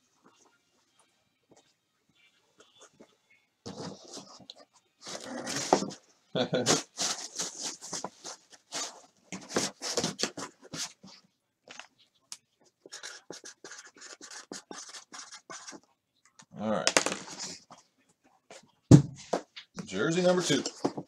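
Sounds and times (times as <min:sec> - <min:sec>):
pen scratching on cardboard: 0:12.8 - 0:15.9.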